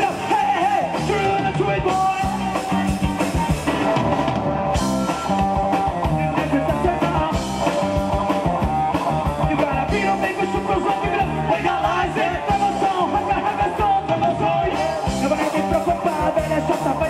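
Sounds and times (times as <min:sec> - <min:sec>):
man singing into microphone: 0:00.0 - 0:03.2, 0:06.1 - 0:07.5, 0:09.4 - 0:17.0
live rock band playing: 0:00.0 - 0:17.0.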